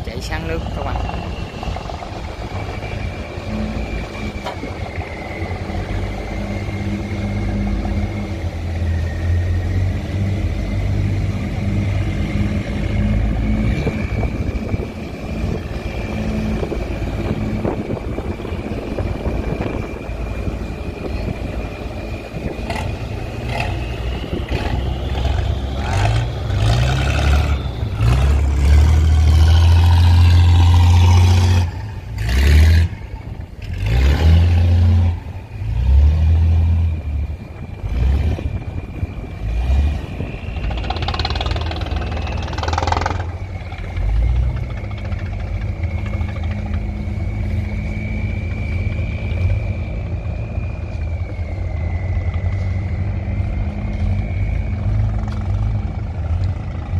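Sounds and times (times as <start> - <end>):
wind buffeting microphone: 0.0 - 32.2, 32.8 - 56.9
boat diesel engines: 0.0 - 56.9.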